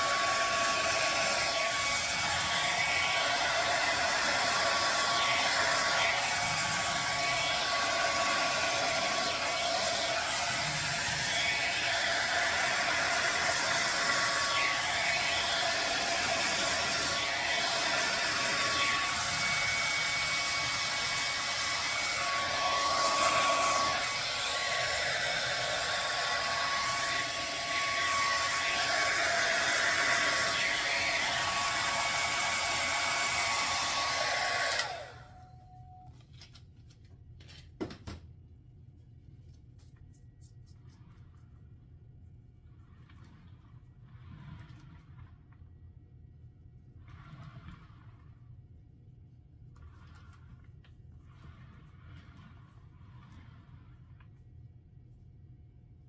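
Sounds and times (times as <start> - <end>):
hair dryer blowing: 0.0 - 35.4.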